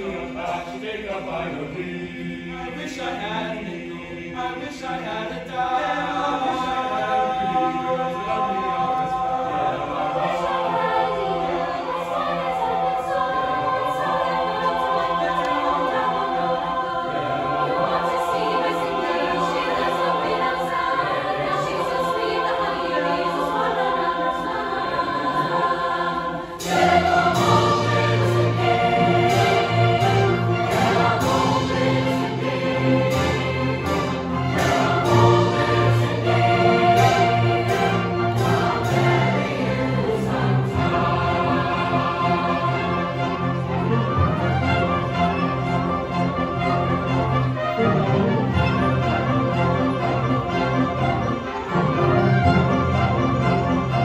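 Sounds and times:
choir singing in harmony: 0.0s - 54.0s.

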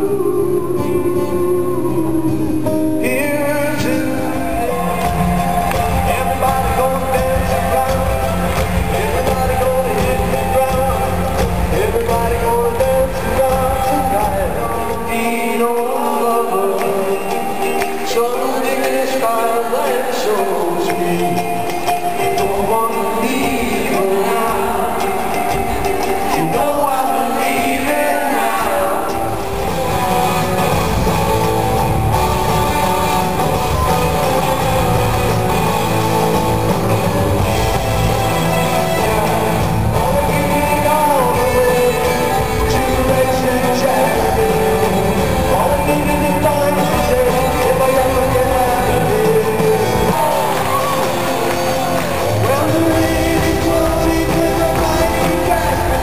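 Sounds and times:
live rock band playing: 0.0s - 56.0s
person singing with guitar: 0.0s - 56.0s.

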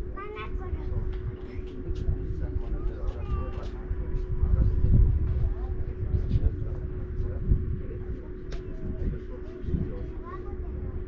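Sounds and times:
faint voices: 0.0s - 11.0s
wind rumbling on microphone: 0.0s - 11.0s.

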